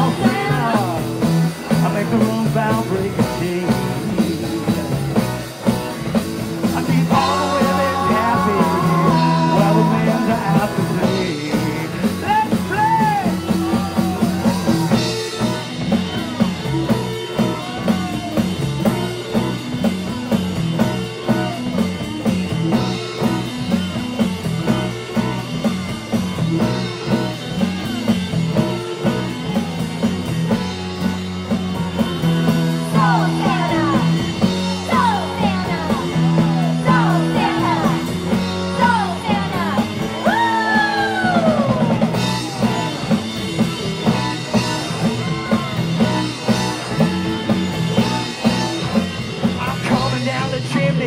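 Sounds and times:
bass guitar: 0.0s - 51.0s
drum kit beat: 0.0s - 51.0s
electric guitar: 0.0s - 51.0s.

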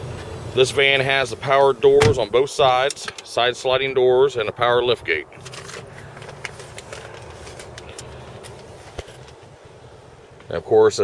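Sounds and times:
low rumble in car cabin: 0.0s - 11.0s
camera handling ticks and rustles: 5.4s - 9.5s.

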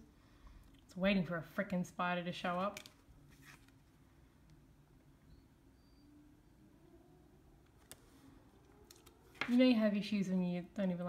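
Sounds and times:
faint hum: 3.0s - 11.0s.

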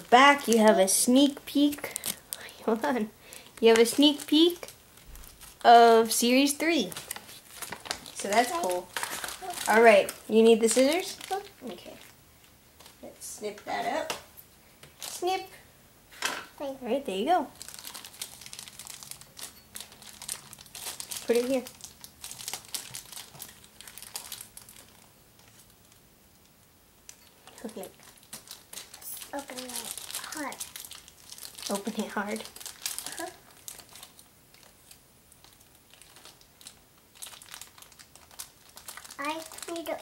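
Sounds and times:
plastic wrapper crinkling: 0.0s - 13.1s, 14.8s - 15.4s, 17.5s - 40.0s.

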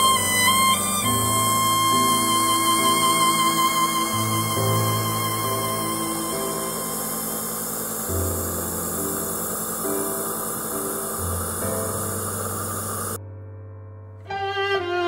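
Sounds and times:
nebulizer hissing: 0.0s - 13.2s
slow music with held notes: 0.0s - 15.0s.

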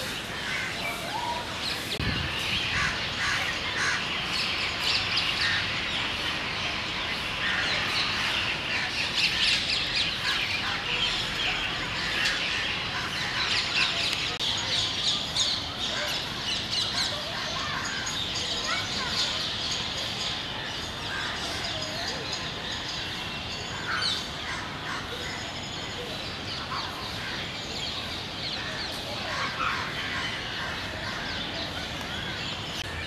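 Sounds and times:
birds chirping: 0.0s - 33.0s.

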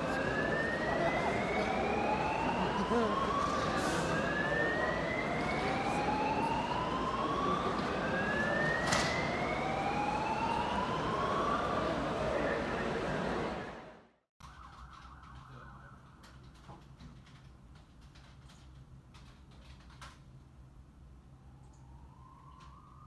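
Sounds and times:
emergency siren wailing: 0.0s - 16.5s, 21.2s - 23.0s
street noise: 0.0s - 23.0s.

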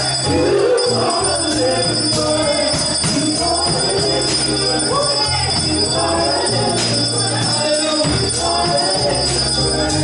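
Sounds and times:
bass notes: 0.0s - 10.0s
drum kit: 0.0s - 10.0s
jingling bell-like shimmer: 0.0s - 10.0s
stage piano: 0.0s - 10.0s
voices singing: 0.0s - 10.0s.

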